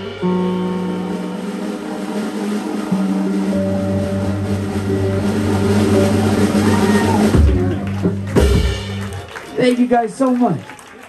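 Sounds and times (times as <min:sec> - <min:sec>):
band playing slow held chords: 0:00.0 - 0:09.6.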